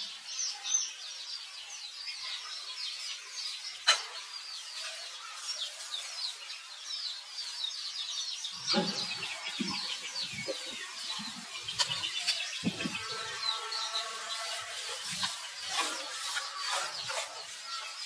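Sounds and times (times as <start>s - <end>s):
birds chirping: 0.0s - 18.0s
longer steady animal call: 8.7s - 17.9s.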